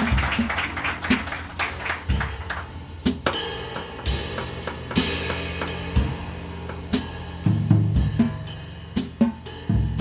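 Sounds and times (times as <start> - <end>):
drum kit hits: 0.0 - 10.0
electric bass notes: 2.0 - 10.0.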